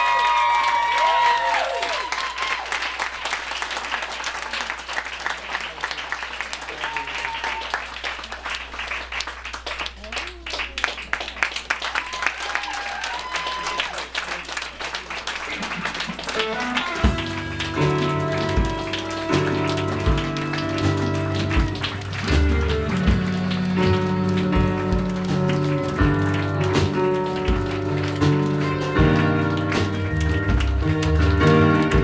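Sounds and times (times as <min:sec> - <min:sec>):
audience clapping: 0:00.0 - 0:32.0
live band playing: 0:15.6 - 0:32.0
heavy bass notes: 0:16.9 - 0:32.0.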